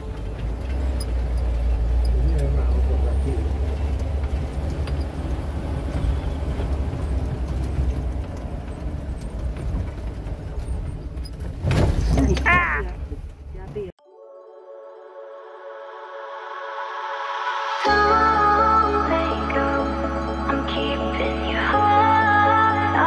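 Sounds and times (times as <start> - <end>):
engine and road rumble: 0.0 - 14.0.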